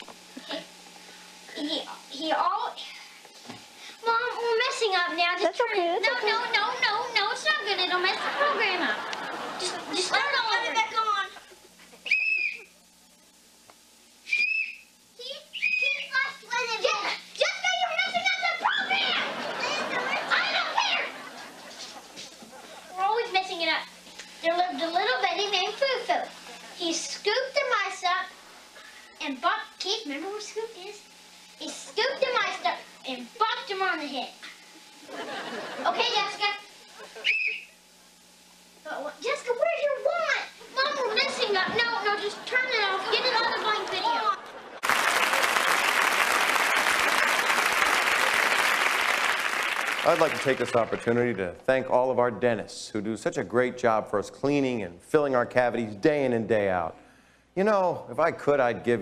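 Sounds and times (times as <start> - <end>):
faint steady hum: 0.0 - 59.0
child's high squeal: 12.0 - 12.7, 14.3 - 14.8, 15.5 - 16.1, 37.2 - 37.7
short high whistle tones: 12.0 - 12.7, 14.2 - 14.9, 15.5 - 16.1, 37.2 - 37.8.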